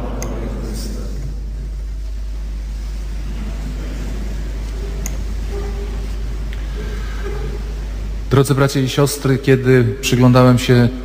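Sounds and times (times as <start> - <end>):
faint irregular background noise: 0.0 - 11.0
steady low hum: 0.0 - 11.0.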